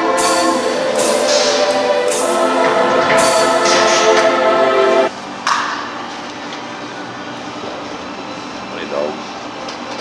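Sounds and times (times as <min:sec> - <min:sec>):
indistinct voices: 0:00.0 - 0:05.1
workshop noise: 0:00.0 - 0:05.8.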